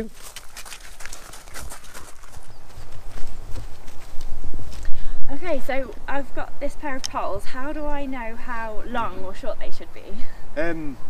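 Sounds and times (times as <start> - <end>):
footsteps: 0.0 - 6.0.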